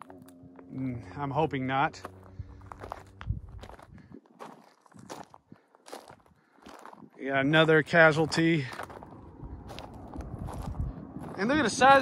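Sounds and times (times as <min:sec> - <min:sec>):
footsteps on rocky gravel: 0:00.0 - 0:12.0.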